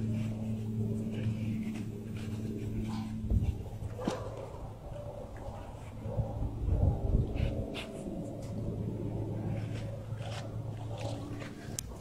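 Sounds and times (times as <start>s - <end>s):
dog sniffing the ground: 0.0s - 12.0s
steady low hum: 0.0s - 12.0s.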